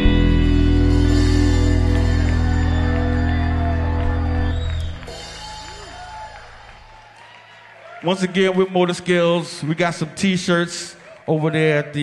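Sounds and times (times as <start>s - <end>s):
live band holding chord: 0.0s - 6.8s.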